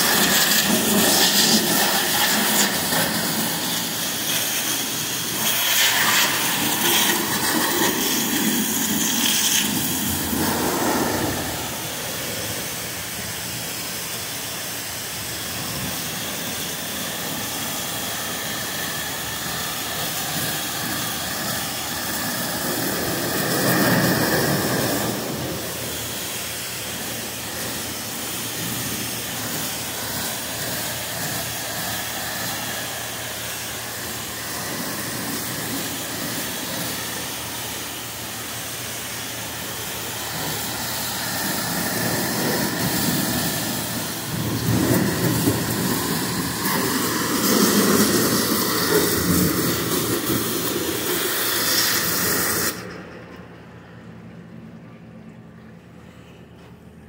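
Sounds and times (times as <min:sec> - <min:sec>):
pressure washer spraying metal: 0:00.0 - 0:53.0.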